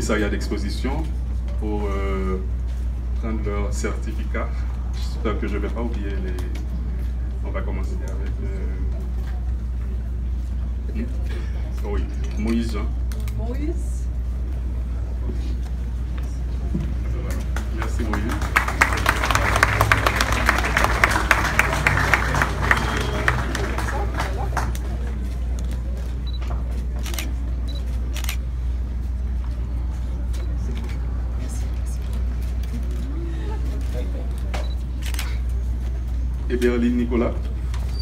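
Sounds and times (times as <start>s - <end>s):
steady low hum: 0.0s - 37.9s
people talking quietly: 0.0s - 38.0s
faint voices: 4.5s - 38.0s.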